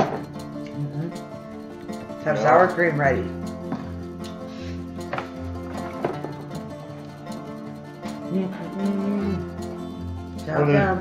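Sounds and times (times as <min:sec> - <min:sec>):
mandolin and guitar music: 0:00.0 - 0:11.0.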